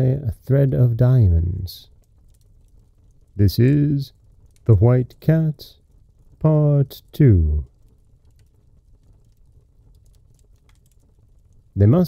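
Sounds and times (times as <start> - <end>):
low steady hum: 0.0 - 12.0
faint clicks: 1.8 - 11.8.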